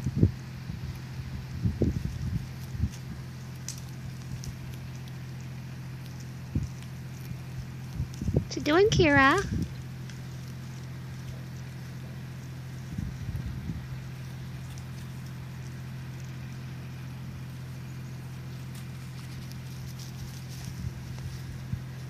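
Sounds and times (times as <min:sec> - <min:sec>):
hooves scrabbling on dirt: 0:00.0 - 0:22.0
steady low hum: 0:00.0 - 0:22.0.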